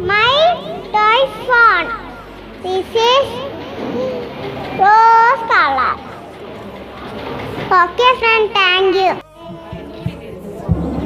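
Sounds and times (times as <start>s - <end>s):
child speaking: 0.0s - 6.1s, 7.7s - 9.2s.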